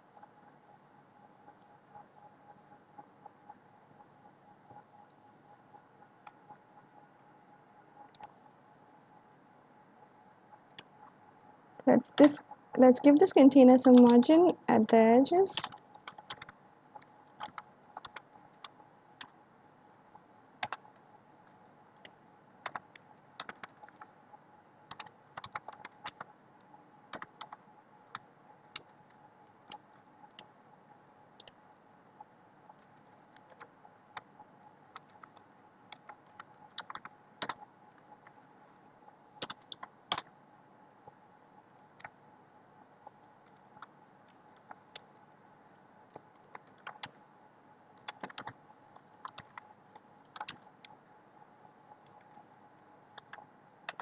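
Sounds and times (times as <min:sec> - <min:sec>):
computer keyboard typing: 0:12.1 - 0:19.4, 0:20.6 - 0:21.0, 0:22.0 - 0:24.1, 0:24.9 - 0:26.3, 0:27.1 - 0:30.5, 0:31.4 - 0:31.6, 0:32.8 - 0:34.3, 0:34.9 - 0:38.4, 0:39.4 - 0:40.3, 0:46.1 - 0:47.2, 0:48.0 - 0:51.0, 0:53.1 - 0:54.0.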